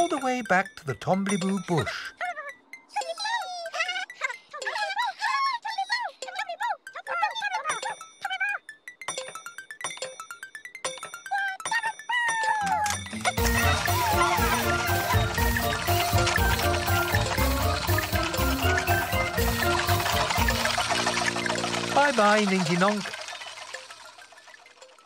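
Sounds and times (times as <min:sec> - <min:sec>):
children's music with bass line: 0:00.0 - 0:04.5, 0:06.7 - 0:25.0
squeaky cartoon voices babbling: 0:01.4 - 0:08.8, 0:11.2 - 0:24.6
tinkly chime notes: 0:06.2 - 0:25.0.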